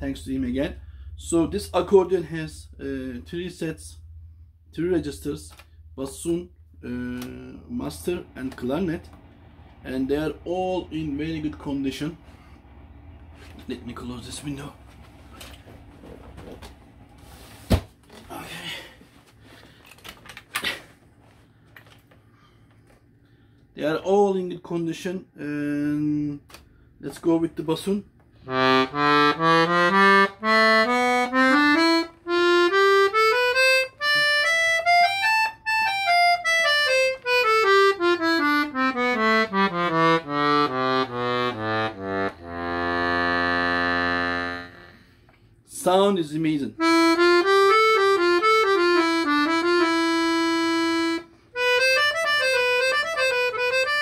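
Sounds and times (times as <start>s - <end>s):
accordion notes and chord: 6.9s - 17.0s, 28.3s - 45.3s, 46.8s - 54.0s.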